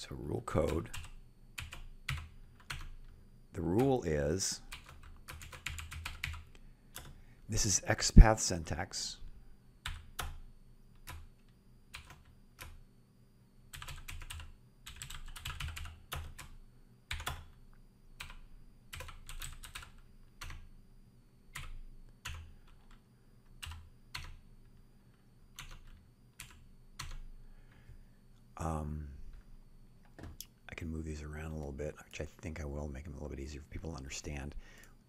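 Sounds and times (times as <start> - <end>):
typing on computer keyboard: 0.6 - 3.1, 4.7 - 7.2, 9.8 - 12.8, 13.7 - 17.6, 18.2 - 20.7, 21.6 - 24.4, 25.6 - 27.2.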